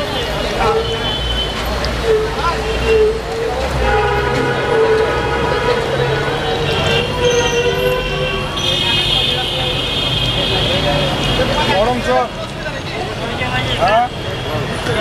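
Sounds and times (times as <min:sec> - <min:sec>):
people's voices: 0:00.0 - 0:15.0
car horns blasting: 0:03.7 - 0:11.5.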